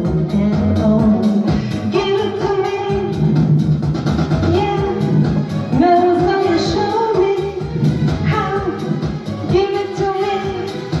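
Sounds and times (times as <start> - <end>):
woman singing: 0.0 - 3.2, 4.4 - 11.0
pop music with steady beat: 0.0 - 11.0.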